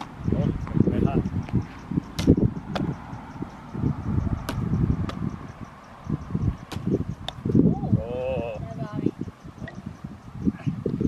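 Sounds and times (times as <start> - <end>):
wind rumble on microphone: 0.0 - 11.0
baseball smacking into net and gloves: 6.7 - 6.9.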